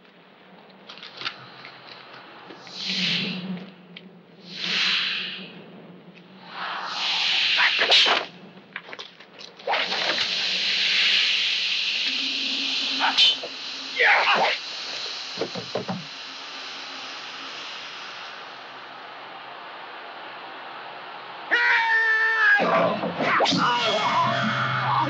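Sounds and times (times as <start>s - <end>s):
steady hiss: 0.0s - 25.0s
hissing whooshes: 2.2s - 8.6s, 9.6s - 21.5s
sharp crack: 6.1s - 12.1s.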